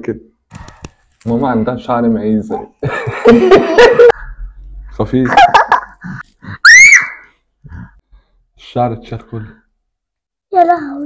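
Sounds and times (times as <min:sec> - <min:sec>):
girl shrieking: 0:06.6 - 0:07.3.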